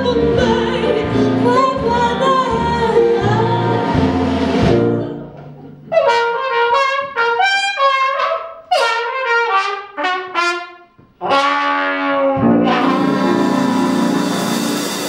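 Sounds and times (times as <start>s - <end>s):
jazz band playing: 0.0s - 5.2s, 11.2s - 15.0s
jazz trumpet solo: 5.9s - 15.0s.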